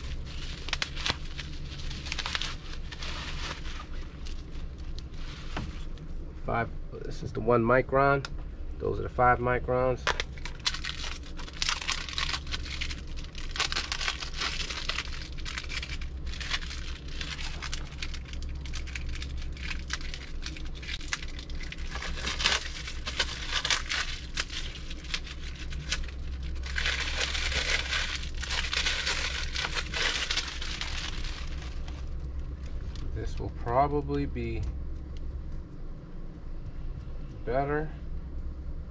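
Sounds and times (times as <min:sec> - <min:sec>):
plastic wrapping crinkling and tearing: 0:00.0 - 0:05.5, 0:10.1 - 0:33.1.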